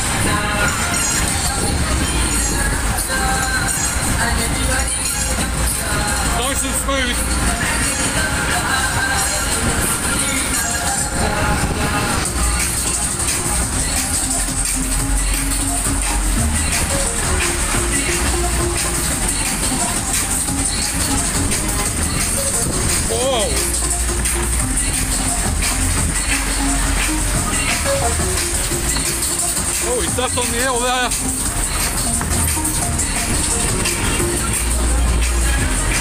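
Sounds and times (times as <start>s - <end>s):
loud fairground music with voice: 0.0s - 36.0s.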